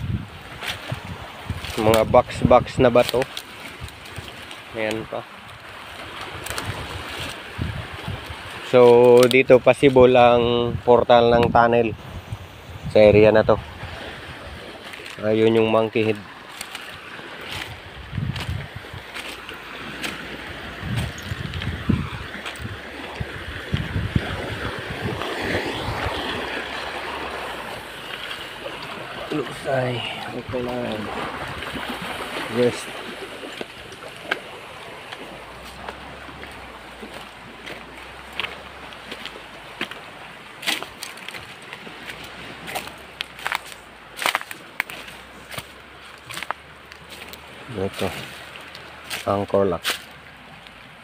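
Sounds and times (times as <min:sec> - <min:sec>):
wind buffeting microphone: 0:00.0 - 0:04.5, 0:05.4 - 0:43.6
dry twigs snapping and crackling: 0:03.0 - 0:04.7, 0:05.4 - 0:07.4, 0:08.9 - 0:09.4, 0:14.8 - 0:15.2, 0:16.0 - 0:20.2, 0:40.6 - 0:47.4.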